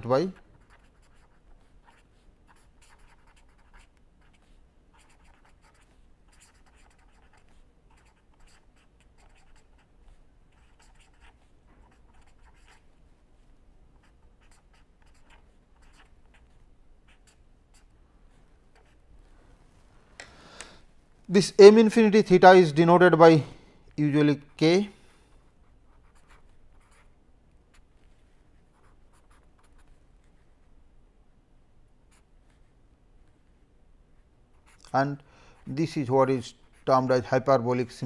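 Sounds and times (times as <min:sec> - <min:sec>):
pen scratching on paper: 0:00.3 - 0:12.9, 0:14.0 - 0:19.0, 0:25.4 - 0:27.1, 0:28.6 - 0:30.4, 0:35.6 - 0:37.1.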